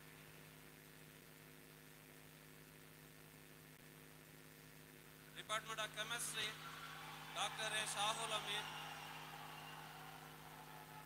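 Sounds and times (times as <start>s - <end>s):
faint low hum with hiss: 0.0s - 11.0s.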